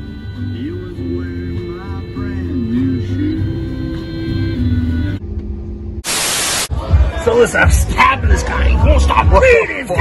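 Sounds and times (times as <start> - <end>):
white-noise static burst: 6.0 - 6.7.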